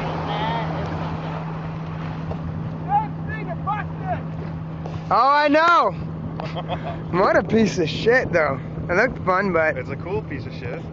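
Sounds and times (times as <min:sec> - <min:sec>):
motorboat engine humming: 0:00.0 - 0:10.9
wake water rushing: 0:00.0 - 0:10.9.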